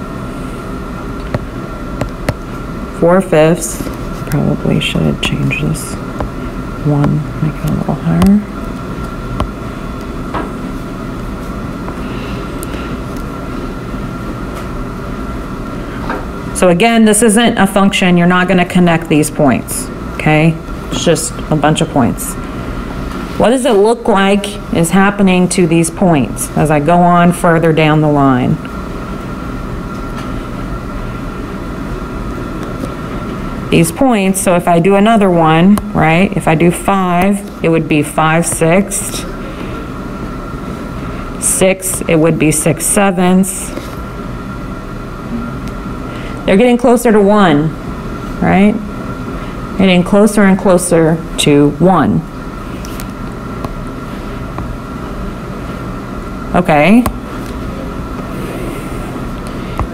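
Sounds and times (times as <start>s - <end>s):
faint steady whine: 0.0s - 59.9s
low rumble and hiss: 0.0s - 59.9s.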